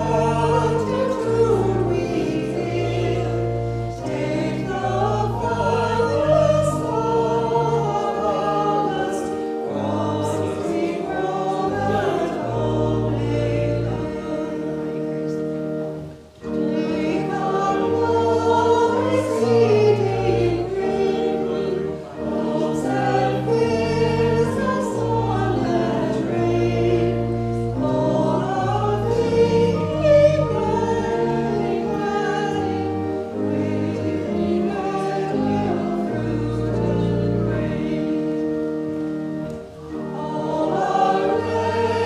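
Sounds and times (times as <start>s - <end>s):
choir singing: 0.0s - 42.0s.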